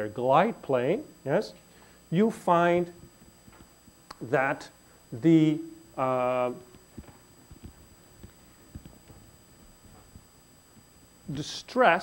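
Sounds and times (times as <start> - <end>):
faint footsteps on floor: 6.7 - 11.0.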